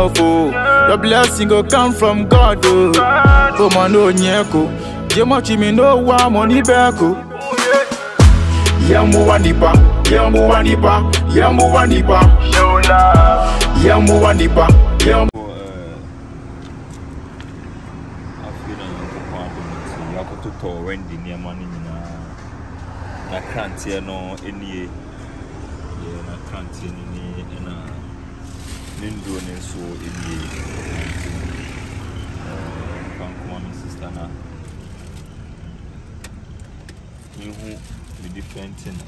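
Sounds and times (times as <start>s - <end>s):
man speaking: 18.4s - 22.4s, 23.2s - 25.0s, 25.9s - 28.0s, 28.9s - 31.2s, 33.0s - 34.5s.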